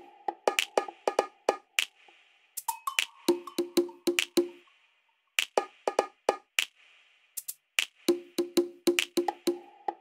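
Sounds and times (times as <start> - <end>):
woody percussion music: 0.0 - 10.0.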